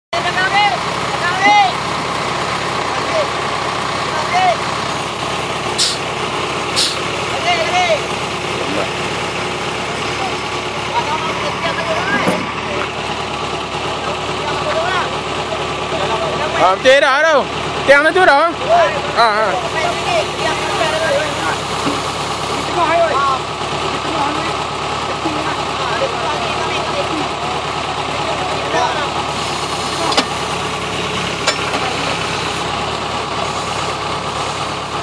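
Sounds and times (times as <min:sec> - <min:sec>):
crane engine running: 0:00.2 - 0:35.0.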